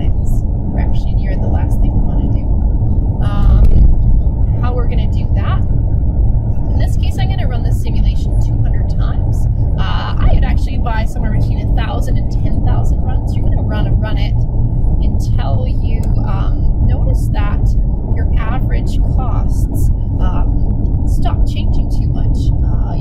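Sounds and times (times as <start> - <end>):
person talking: 0.0 - 2.4, 3.2 - 3.8, 4.5 - 5.6, 6.7 - 14.4, 15.0 - 23.0
loud low rumble: 0.0 - 23.0.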